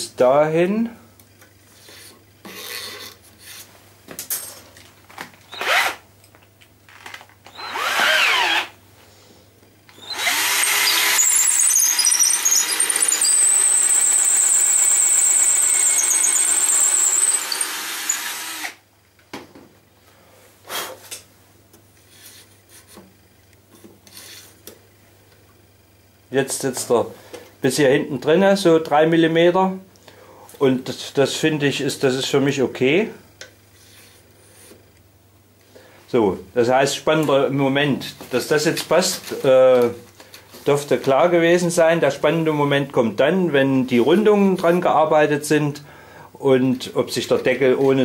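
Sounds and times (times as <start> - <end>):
electric drill boring wood: 7.5 - 8.7, 9.9 - 18.8.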